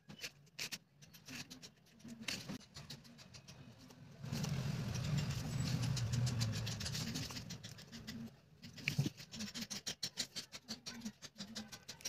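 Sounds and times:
craft knife cutting paper: 0.0 - 12.0
vehicle engine rumble: 2.6 - 8.5.

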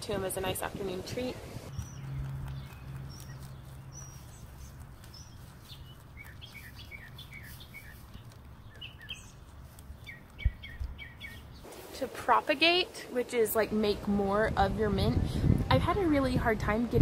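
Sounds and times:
small bird chirping: 1.7 - 11.7.

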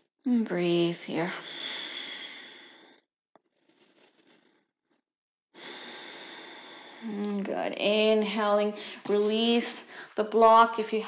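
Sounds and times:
woman breathing: 1.3 - 3.0, 5.6 - 7.1, 8.8 - 9.1, 9.8 - 10.2.

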